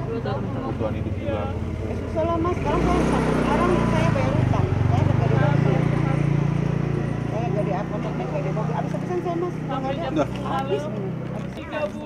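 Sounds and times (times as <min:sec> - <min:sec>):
low engine rumble: 0:00.0 - 0:12.0.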